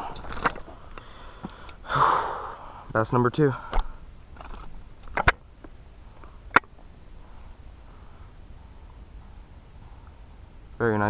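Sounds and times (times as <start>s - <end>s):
handling noises: 0.0s - 1.6s, 3.7s - 6.9s.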